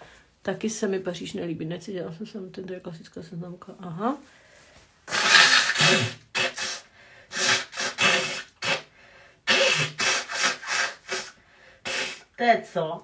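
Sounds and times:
woman blowing her nose: 0:05.0 - 0:12.4.

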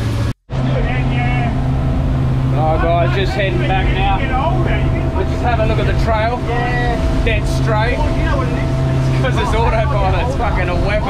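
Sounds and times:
outboard motor droning: 0:00.0 - 0:11.0
water noise: 0:00.0 - 0:11.0.

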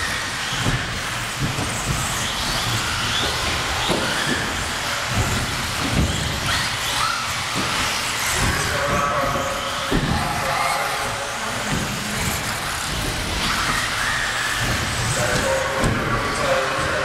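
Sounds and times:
rc car motor whine: 0:00.0 - 0:17.0
rc cars landing thumps: 0:00.0 - 0:17.0.

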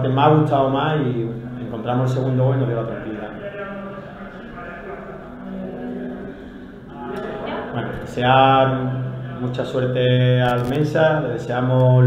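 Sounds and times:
man's voice: 0:00.0 - 0:12.0
talk in room: 0:00.0 - 0:12.0.

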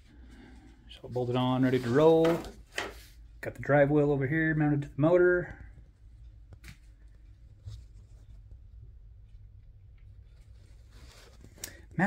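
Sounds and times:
low room tone rumble: 0:00.0 - 0:12.0
soft handling clicks and rustles: 0:04.7 - 0:12.0.

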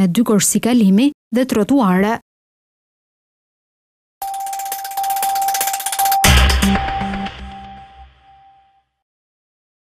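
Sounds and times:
outro jingle with held tone: 0:04.2 - 0:08.7.

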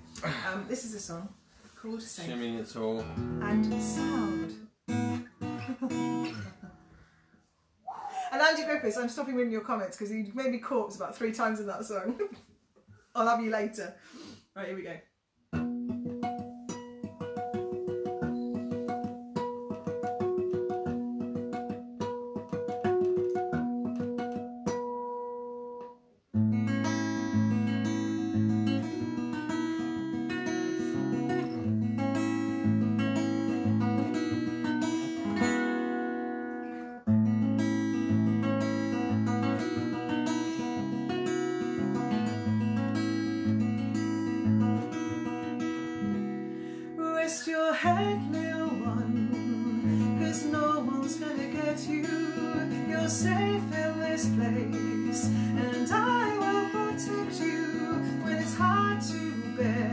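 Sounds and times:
acoustic guitar playing: 0:00.0 - 0:12.2, 0:15.4 - 0:59.9
woman singing: 0:03.4 - 0:04.6, 0:47.0 - 0:59.9.

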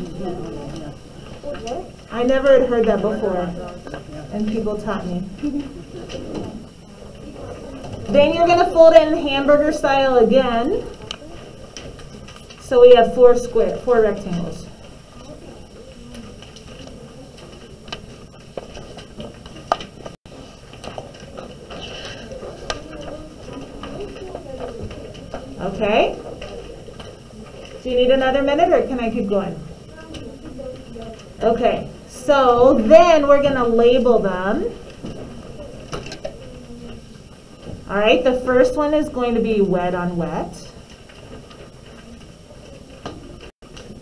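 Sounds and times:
paper rustling and folding: 0:00.0 - 0:37.9, 0:39.6 - 0:44.0
woman's voice: 0:02.1 - 0:05.6, 0:08.1 - 0:11.0, 0:12.6 - 0:14.7, 0:25.6 - 0:26.2, 0:27.8 - 0:29.7, 0:31.4 - 0:34.8, 0:37.9 - 0:40.8.

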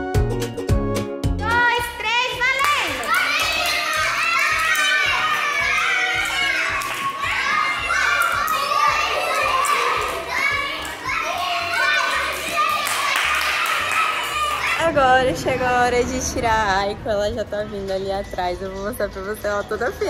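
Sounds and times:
children chattering in a hall: 0:03.2 - 0:15.6.

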